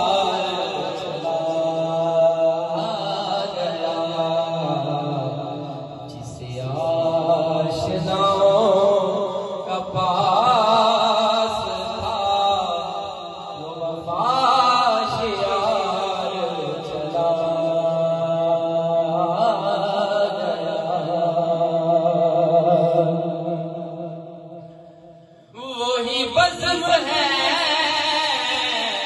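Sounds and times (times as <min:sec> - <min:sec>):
man chanting into microphone: 0:00.0 - 0:29.0.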